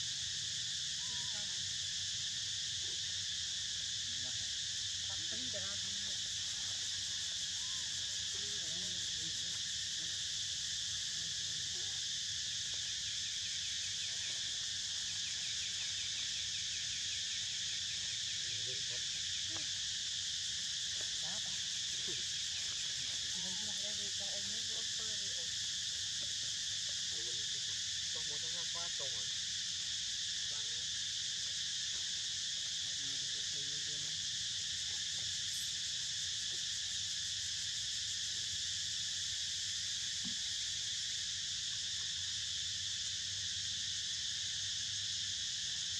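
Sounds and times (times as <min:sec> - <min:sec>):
insect chorus drone: 0:00.0 - 0:45.9
pulsing insect call: 0:00.0 - 0:45.9.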